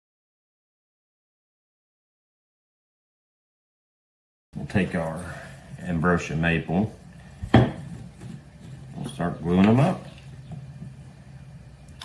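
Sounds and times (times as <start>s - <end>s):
steady low hum: 4.6s - 12.0s.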